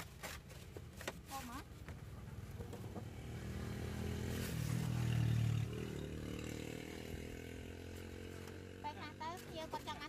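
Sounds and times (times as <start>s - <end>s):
motorcycle engine passing by: 2.2s - 10.0s.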